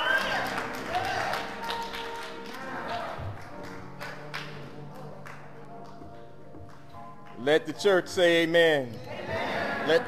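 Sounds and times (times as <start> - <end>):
scattered applause: 0.0 - 5.4
soft church music: 0.0 - 10.0.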